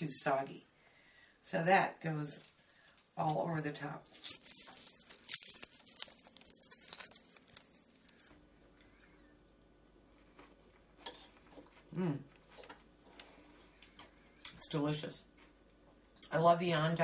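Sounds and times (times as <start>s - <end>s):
crisp bacon crackling: 2.8s - 8.3s.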